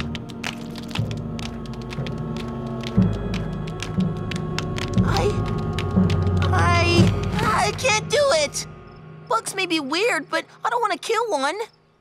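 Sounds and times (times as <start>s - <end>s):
rapid irregular clicks: 0.0s - 8.3s
tense background music: 0.0s - 11.1s.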